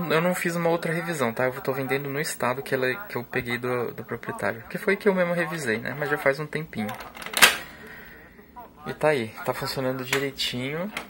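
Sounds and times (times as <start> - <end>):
sharp plastic clack: 6.9 - 7.7.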